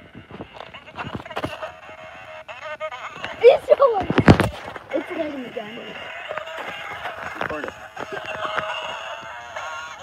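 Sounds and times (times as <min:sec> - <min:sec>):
boot kicking toy: 0:03.9 - 0:04.9.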